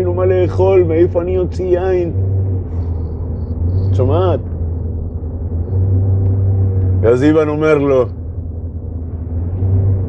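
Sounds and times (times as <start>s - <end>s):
low humming drone: 0.0s - 10.0s.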